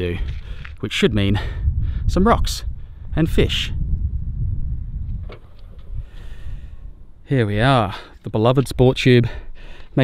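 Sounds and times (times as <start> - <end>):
low rumble: 1.4 - 7.3.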